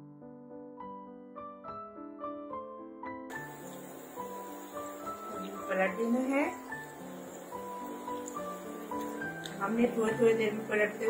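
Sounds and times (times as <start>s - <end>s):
soft keyboard music: 0.0s - 11.0s
snacks sizzling in oil: 3.3s - 11.0s.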